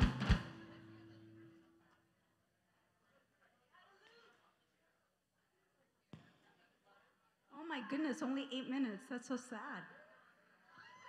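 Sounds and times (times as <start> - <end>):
drum kit hits: 0.0 - 0.7.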